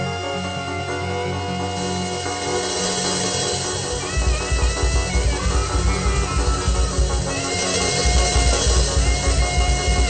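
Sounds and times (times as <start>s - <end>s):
heavy bass and drum beat: 0.0s - 10.0s
held melodic lead line: 0.0s - 10.0s
worship band music: 0.0s - 10.0s.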